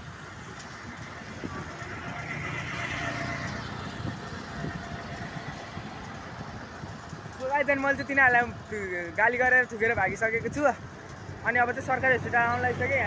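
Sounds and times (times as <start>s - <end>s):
motor vehicle passing by: 0.7s - 7.2s.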